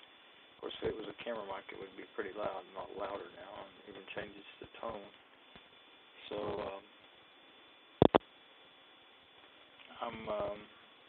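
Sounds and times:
low steady hiss: 0.0s - 11.0s
sharp static pops: 4.2s - 8.4s, 9.2s - 10.6s.

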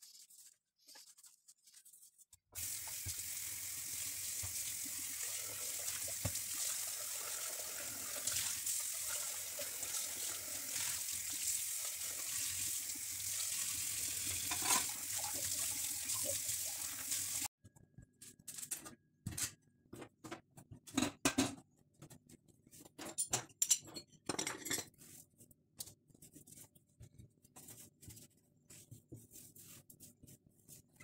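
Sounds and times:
tap water running onto metal pot: 2.6s - 17.5s.

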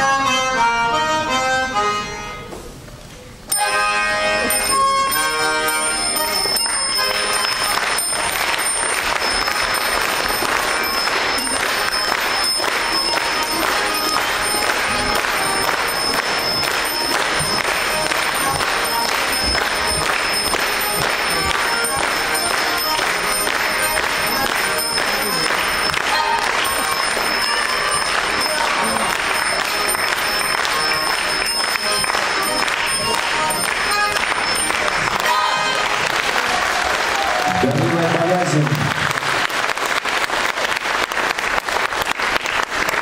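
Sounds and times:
button accordion playing lively tune: 0.0s - 2.5s, 3.5s - 36.5s
bells ringing: 3.5s - 38.9s
audience clapping: 4.4s - 43.0s.

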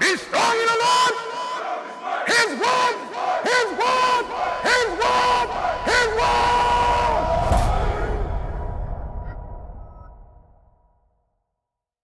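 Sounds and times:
group of people chanting shouts: 0.0s - 8.5s.

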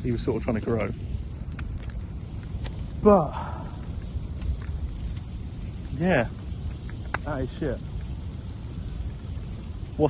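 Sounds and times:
faint crackles: 0.0s - 10.0s
wind on microphone: 0.0s - 10.0s.

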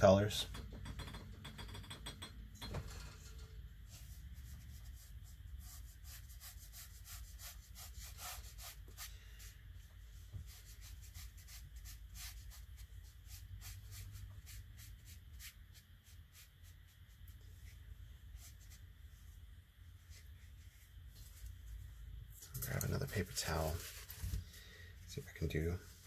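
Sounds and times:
brush strokes on paper: 3.8s - 22.0s.

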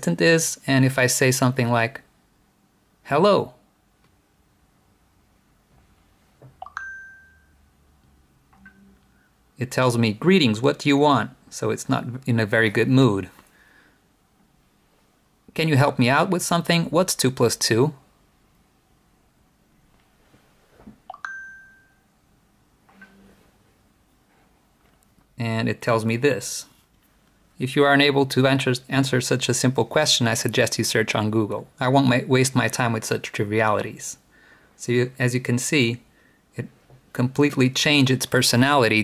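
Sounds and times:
rising pop with ding: 6.6s - 7.3s
smartphone chime: 6.6s - 7.7s, 21.1s - 22.1s
faint message blip: 22.9s - 23.3s.

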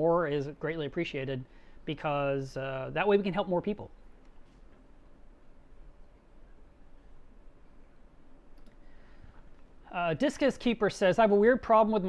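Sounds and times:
man speaking: 0.0s - 4.0s, 9.9s - 12.0s
faint clicks: 8.5s - 8.8s.

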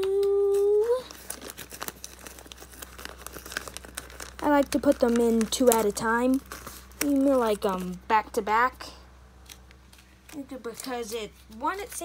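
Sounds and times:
plastic card sleeves crinkling: 0.0s - 8.1s, 9.4s - 12.0s.

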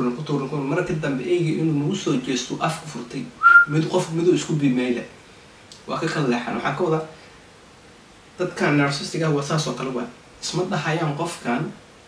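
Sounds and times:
man speaking: 0.0s - 5.1s, 5.8s - 7.2s, 8.4s - 11.8s
short high whistle: 3.4s - 3.8s.

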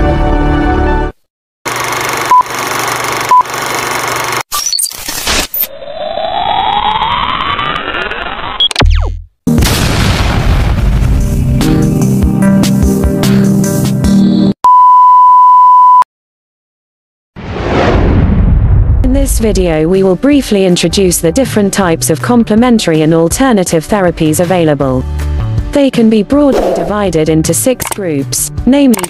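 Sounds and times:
click: 27.8s - 28.0s.

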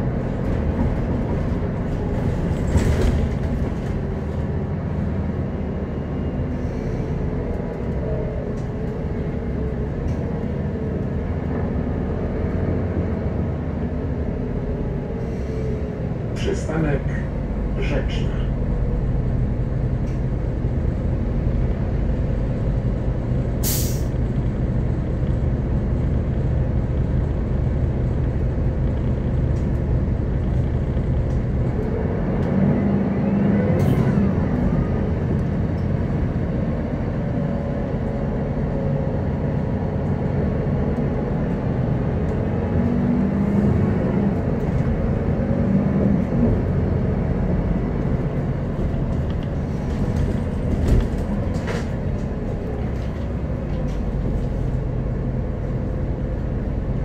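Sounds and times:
bus diesel engine running: 0.0s - 57.0s
compressed air hiss: 23.6s - 24.1s.

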